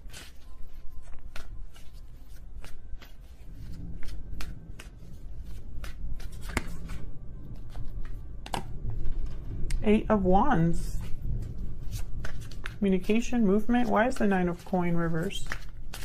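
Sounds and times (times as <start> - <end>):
cards snapping and slapping: 0.0 - 3.2, 5.8 - 7.0, 7.8 - 8.7, 15.4 - 16.0
cards being shuffled: 0.0 - 9.8, 11.0 - 16.0.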